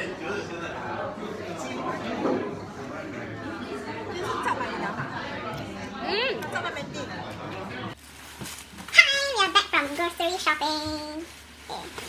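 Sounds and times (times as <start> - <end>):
restaurant chatter: 0.0 - 12.0.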